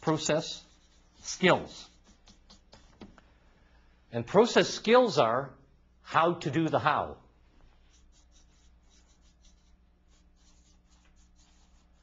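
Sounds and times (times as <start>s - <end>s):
marker scratching on paper: 0.0s - 3.1s, 7.8s - 12.0s.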